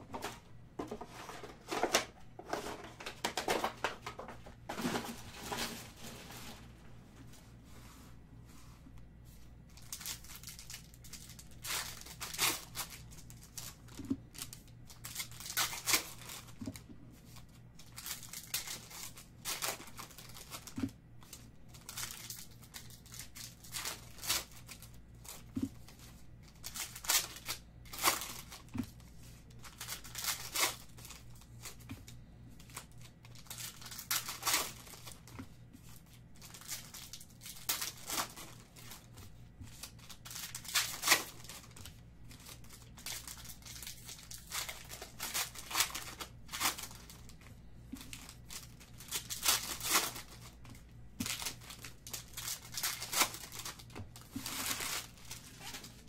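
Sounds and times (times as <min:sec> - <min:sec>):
foil wrappers crinkling and tearing: 0:01.2 - 0:06.8, 0:09.7 - 0:56.0.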